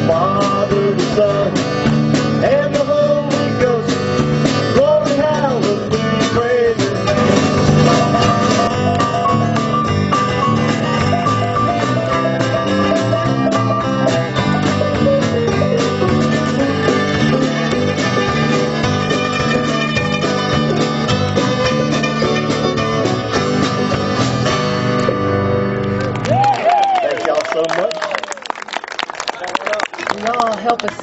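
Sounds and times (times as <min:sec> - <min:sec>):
strummed acoustic guitar: 0:00.0 - 0:26.0
plucked string lead: 0:00.0 - 0:26.2.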